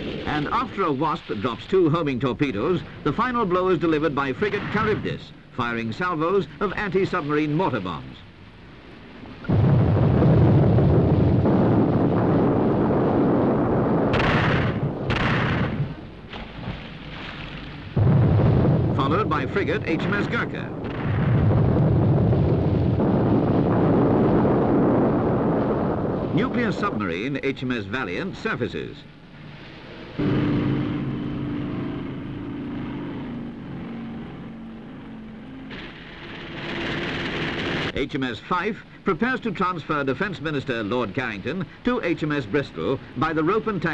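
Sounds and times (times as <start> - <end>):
heavy mortar blast: 9.4 - 16.7, 17.9 - 26.9, 30.2 - 31.7
aircraft engine passing: 29.4 - 37.7.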